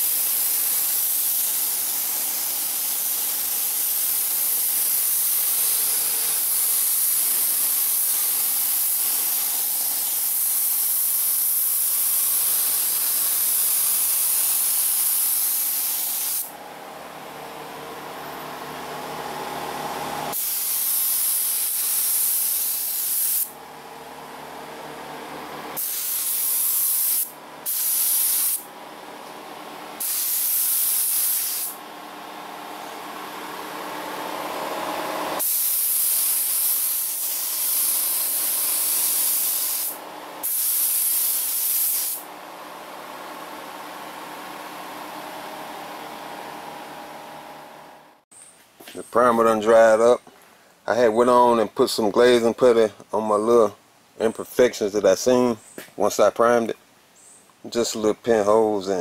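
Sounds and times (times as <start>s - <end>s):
spray gun hissing air: 0.0s - 16.5s, 20.3s - 23.6s, 25.8s - 28.7s, 30.0s - 31.8s, 35.3s - 42.3s.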